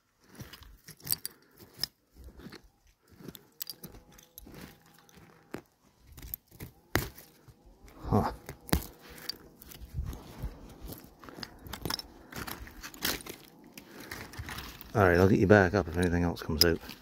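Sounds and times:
hand digging through soil: 4.4 - 17.0.

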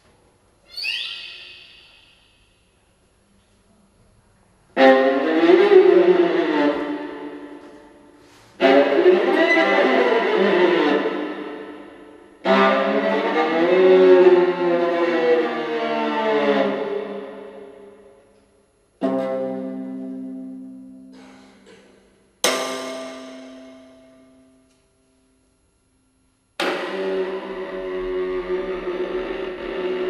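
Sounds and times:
solo viola bowed phrases: 4.8 - 17.8, 19.0 - 21.1, 26.7 - 30.0.

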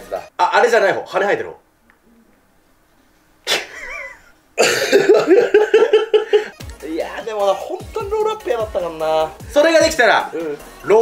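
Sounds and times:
men laughing loudly: 3.5 - 6.7.

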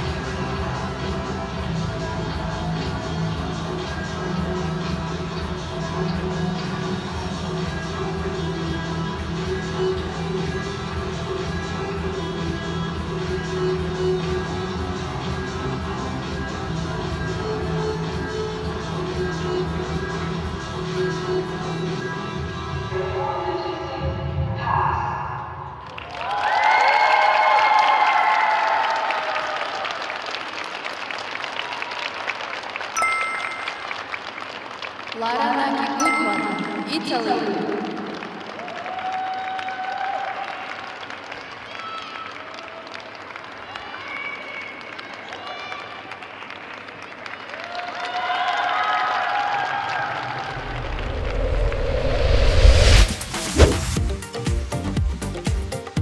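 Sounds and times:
audience clapping: 25.8 - 36.6, 37.2 - 50.8
crowd cheering: 25.9 - 34.7, 35.6 - 51.9
short electronic chime: 33.0 - 34.0
deep bass music: 50.6 - 56.0.

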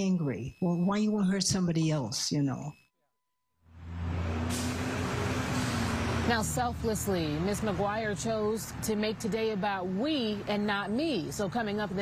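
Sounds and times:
road traffic hum: 3.6 - 12.0
hiss of tyres and engines: 3.9 - 6.4.

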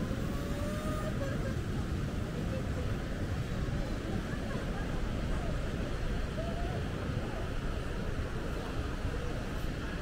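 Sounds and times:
wind: 0.0 - 10.0.

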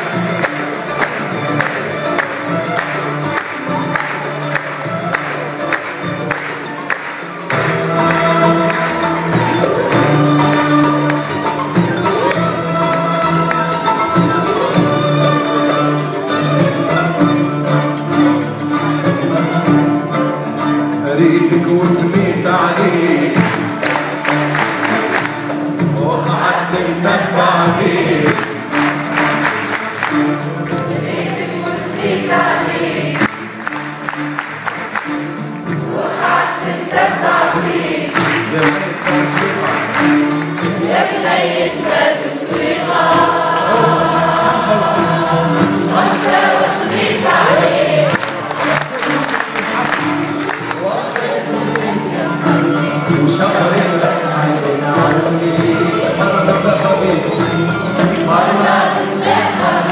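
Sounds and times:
mixed choir singing: 0.0 - 17.6, 21.0 - 59.9
plucked strings: 0.0 - 59.9.

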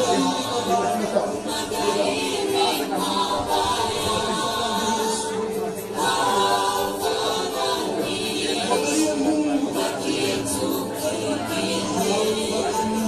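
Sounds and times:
unaccompanied choir singing: 0.0 - 13.0.

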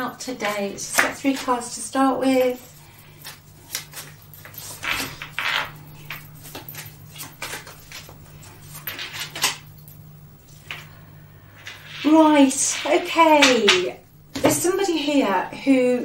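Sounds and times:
cards shuffling: 3.2 - 9.6.

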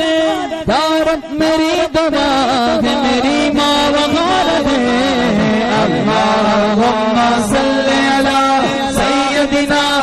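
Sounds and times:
man chanting long note: 0.0 - 10.0.

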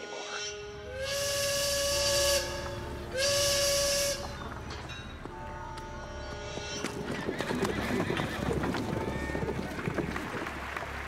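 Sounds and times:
steam whistle blasts: 0.4 - 4.5.

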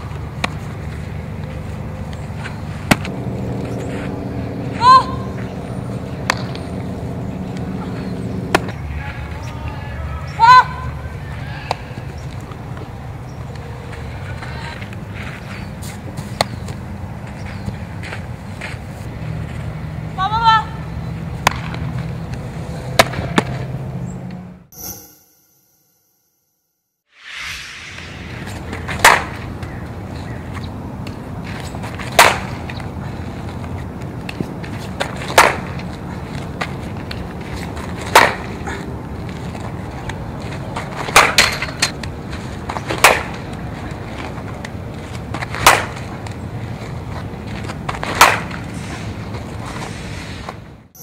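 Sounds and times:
outdoor background hum: 0.0 - 24.7, 27.4 - 51.0
high-pitched call: 24.7 - 26.1
bat hitting ball crack: 28.4 - 29.7, 32.0 - 32.7, 35.0 - 35.8, 38.0 - 38.5, 41.1 - 41.8, 42.9 - 43.4, 45.4 - 46.1, 47.9 - 48.6
softball smacks: 28.8 - 29.4, 32.1 - 32.6, 35.0 - 35.7, 38.1 - 38.5, 48.0 - 48.6.

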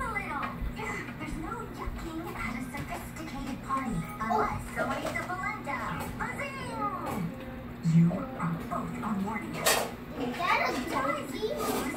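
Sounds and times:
children talking and playing: 0.0 - 8.6, 9.9 - 11.9.

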